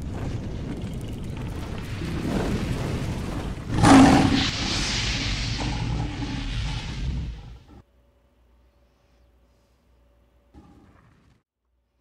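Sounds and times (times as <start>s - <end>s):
hissing rumble: 0.0s - 7.8s
loud boom: 0.0s - 7.8s
low fiery rumble: 0.0s - 7.8s.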